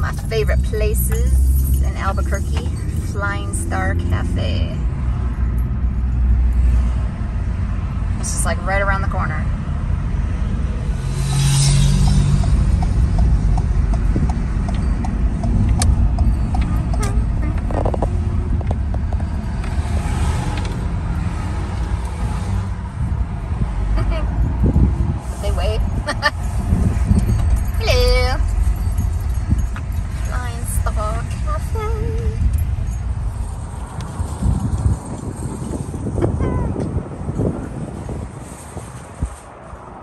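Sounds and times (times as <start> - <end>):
van engine and road rumble: 0.0 - 40.0.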